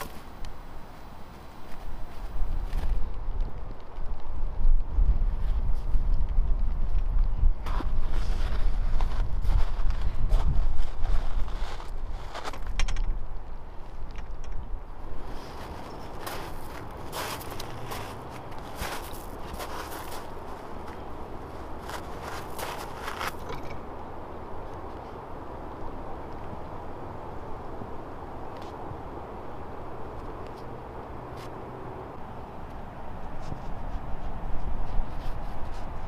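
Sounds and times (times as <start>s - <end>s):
wind buffeting microphone: 1.8s - 28.2s, 32.0s - 36.0s
footsteps crunching on wood chips: 7.6s - 12.7s, 15.2s - 23.6s.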